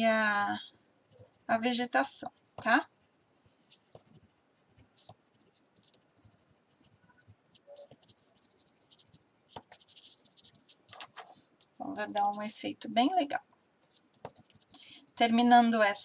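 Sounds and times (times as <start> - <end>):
pencil scratching on paper: 1.1 - 14.7.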